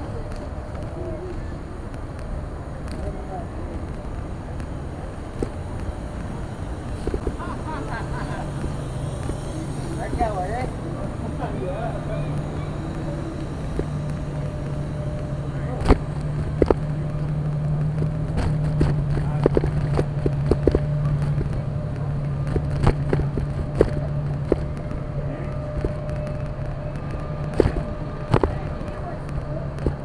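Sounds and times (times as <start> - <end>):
traffic hum: 0.0 - 30.0
sharp clicks and knocks: 12.3 - 30.0.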